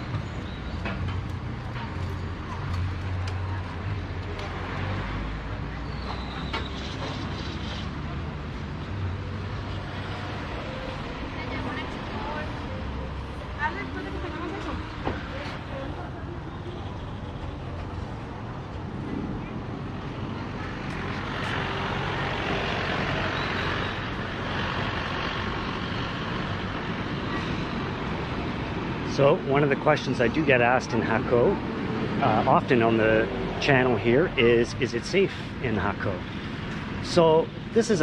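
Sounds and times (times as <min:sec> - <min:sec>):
vehicles passing on road: 0:00.0 - 0:38.0.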